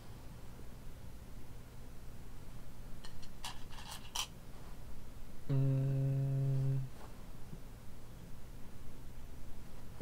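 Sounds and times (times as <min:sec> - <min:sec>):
man humming low note: 0:05.4 - 0:07.0.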